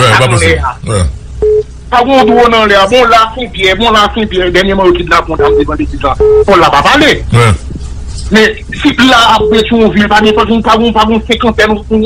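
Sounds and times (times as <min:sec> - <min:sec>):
man speaking on phone line: 0:00.0 - 0:01.1, 0:01.9 - 0:07.6, 0:08.3 - 0:12.0
telephone beep: 0:01.4 - 0:01.6, 0:05.4 - 0:05.6, 0:06.2 - 0:06.5.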